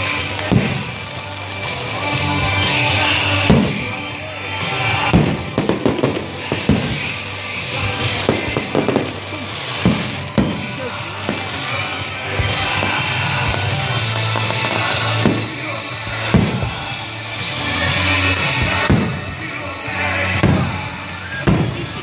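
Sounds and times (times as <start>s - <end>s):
fireworks bangs and crackles: 0.0s - 22.0s
music: 0.0s - 22.0s.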